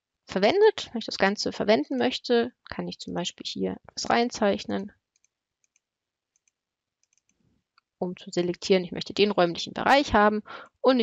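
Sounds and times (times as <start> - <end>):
computer mouse clicks: 5.1 - 7.4.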